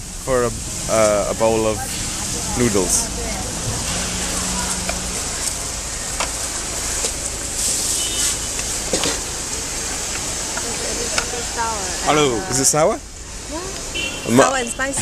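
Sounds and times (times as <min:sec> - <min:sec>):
traffic: 0:00.0 - 0:15.0
faint voices: 0:00.3 - 0:07.2.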